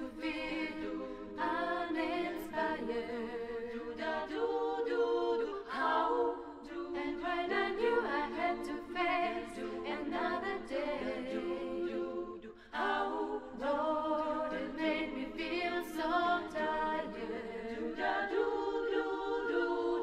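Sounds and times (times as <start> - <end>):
women singing a cappella: 0.0 - 20.0.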